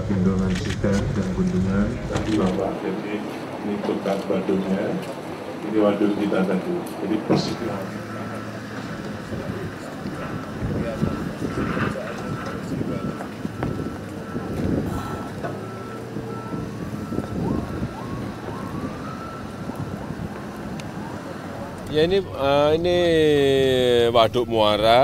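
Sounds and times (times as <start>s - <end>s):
crowd chatter: 0.0s - 25.0s
backup alarm beeping: 10.3s - 25.0s.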